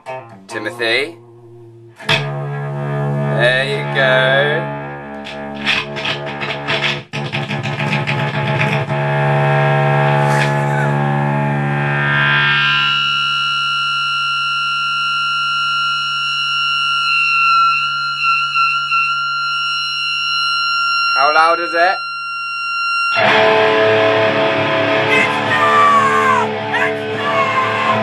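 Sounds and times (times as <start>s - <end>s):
high-pitched guitar feedback tone: 0.0s - 7.0s, 8.9s - 28.0s
distorted electric guitar: 0.0s - 28.0s.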